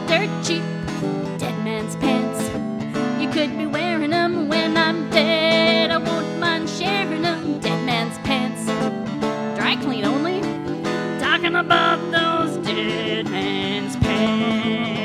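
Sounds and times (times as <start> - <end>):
banjo accompaniment: 0.0 - 15.0.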